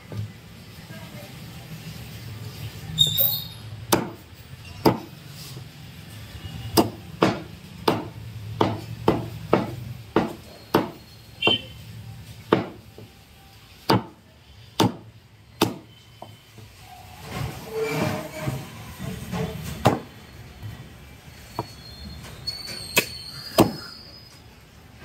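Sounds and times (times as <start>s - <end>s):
cleaver chopping on wooden block: 6.8s - 11.6s, 12.5s - 12.8s, 15.6s - 15.8s.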